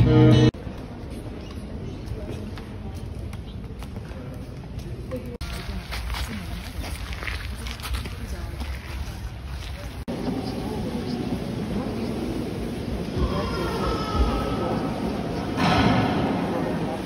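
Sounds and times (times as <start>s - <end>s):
indistinct voices: 9.4s - 17.0s.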